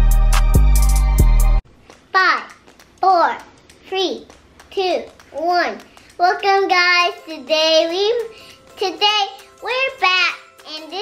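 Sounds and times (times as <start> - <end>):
girl singing: 2.2 - 11.0.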